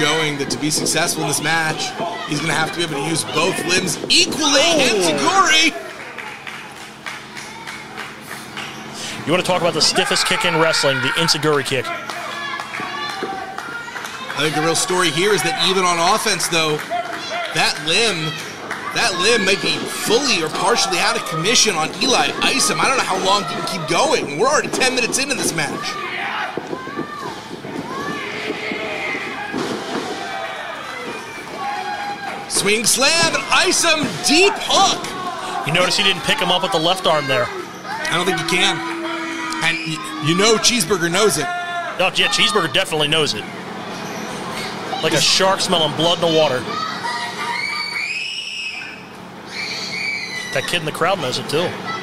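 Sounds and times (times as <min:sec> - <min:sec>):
crowd shouting: 0:00.0 - 0:06.6, 0:09.4 - 0:51.0.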